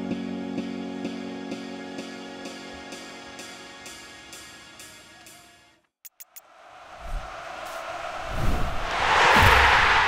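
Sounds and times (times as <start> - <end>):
quick clicks: 6.1 - 6.5.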